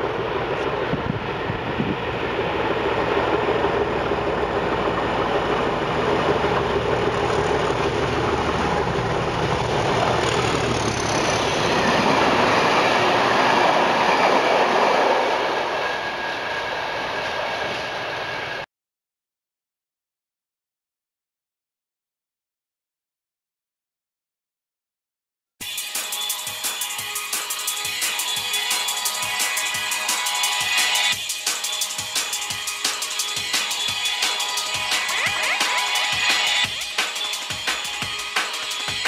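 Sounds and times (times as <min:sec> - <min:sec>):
rumbling wheel and rail noise: 0:00.0 - 0:18.6
train passing at speed: 0:00.0 - 0:18.7, 0:25.6 - 0:39.0.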